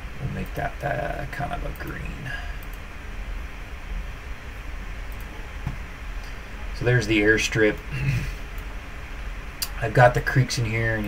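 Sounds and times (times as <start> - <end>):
low room hum: 0.0 - 11.0
faint click: 2.6 - 2.8, 5.1 - 5.3.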